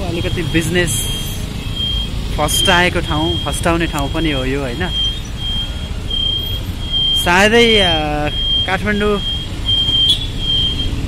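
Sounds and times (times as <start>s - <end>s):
high electronic beeps: 0.0s - 11.0s
motorbike engine: 0.0s - 11.0s.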